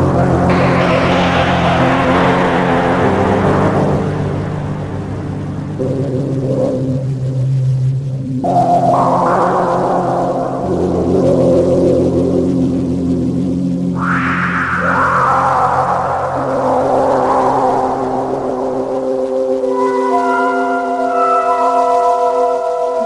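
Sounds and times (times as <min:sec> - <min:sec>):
low drone: 0:00.0 - 0:19.7
synthesizer pad chords: 0:00.5 - 0:07.4.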